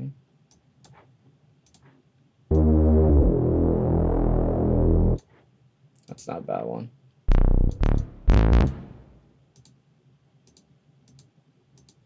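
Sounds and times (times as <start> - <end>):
low synth bass note: 2.5 - 5.2, 7.3 - 9.2.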